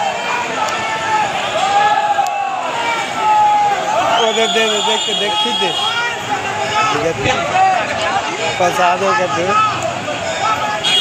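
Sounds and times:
large crowd shouting: 0:00.0 - 0:11.0.

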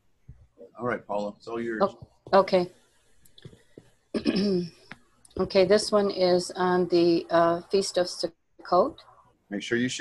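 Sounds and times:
woman clearing her throat: 0:04.2 - 0:04.7.

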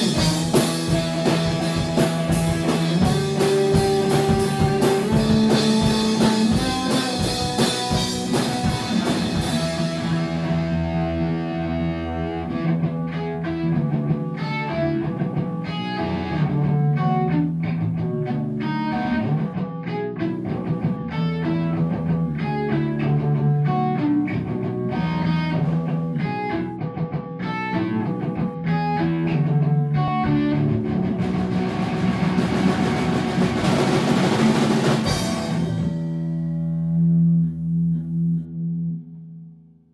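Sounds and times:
electric guitar riff: 0:00.0 - 0:39.6
bass guitar line: 0:00.0 - 0:39.9.

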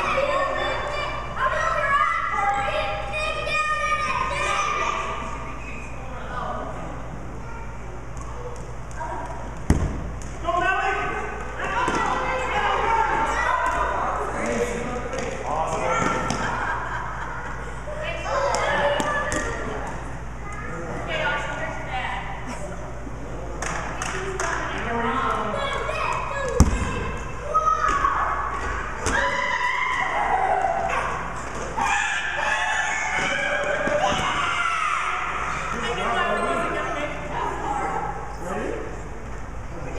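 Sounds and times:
people talking and calling out: 0:00.0 - 0:39.9
rubber ball thumps: 0:09.6 - 0:10.4.

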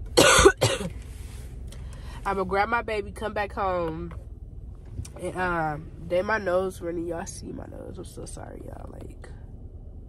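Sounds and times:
woman coughing: 0:00.2 - 0:01.0.

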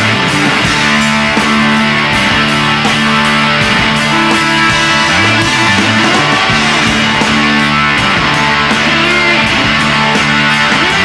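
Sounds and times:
bass: 0:00.0 - 0:11.0
drums: 0:00.0 - 0:11.0
electric guitars: 0:00.0 - 0:11.0.

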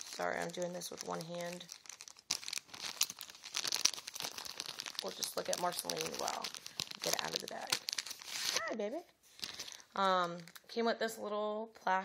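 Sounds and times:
plastic bag crinkling: 0:00.0 - 0:10.7.

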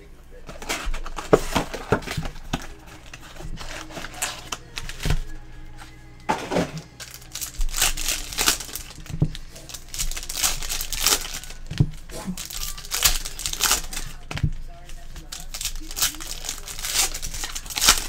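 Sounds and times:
foil wrappers crinkling and tearing: 0:00.0 - 0:18.0.

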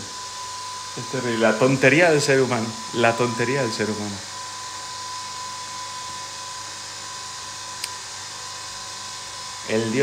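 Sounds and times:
thin high steady tone: 0:00.0 - 0:06.0.

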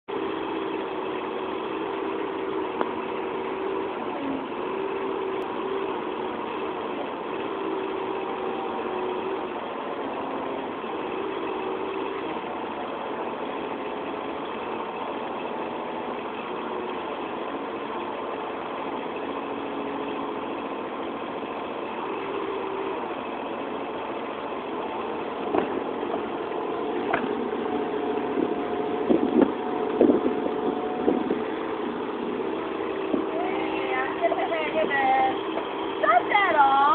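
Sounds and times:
excavator engine running: 0:00.1 - 0:36.9.

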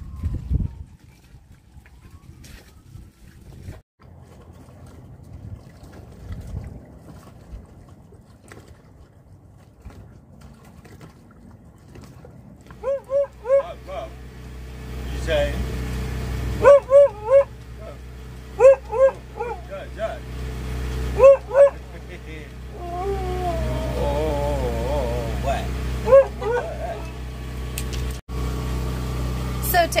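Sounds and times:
dog whining: 0:12.8 - 0:13.7, 0:16.6 - 0:17.5, 0:18.6 - 0:19.6, 0:21.2 - 0:21.8, 0:22.7 - 0:27.2
large dog barking: 0:12.8 - 0:13.7, 0:16.6 - 0:17.5, 0:18.5 - 0:19.7, 0:21.1 - 0:21.9, 0:24.6 - 0:27.2.

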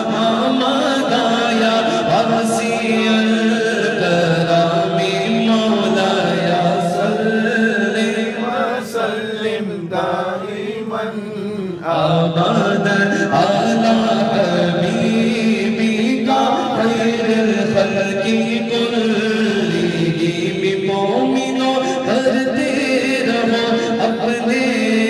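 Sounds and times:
men chanting into a microphone: 0:00.0 - 0:25.0.

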